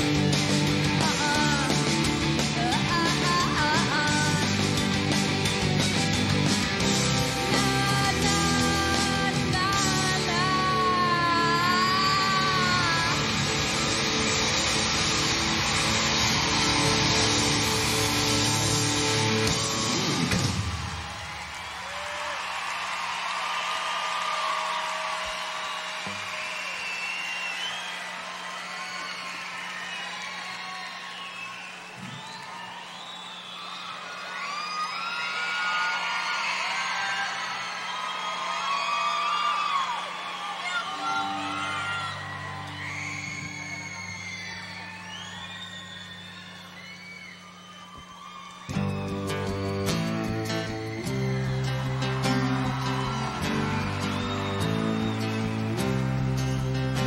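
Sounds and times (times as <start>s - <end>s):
rock band final chord: 0.0s - 21.0s
arena crowd cheering and screaming: 0.0s - 57.0s.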